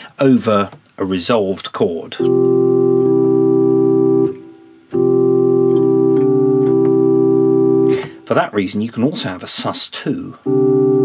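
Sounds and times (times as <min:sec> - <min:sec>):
sustained keyboard chords: 0:02.2 - 0:08.4, 0:10.4 - 0:11.0.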